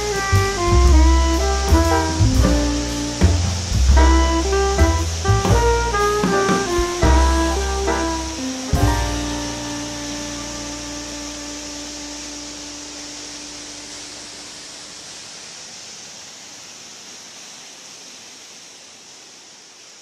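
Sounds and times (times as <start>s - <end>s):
waterfall rushing: 0.0s - 20.0s.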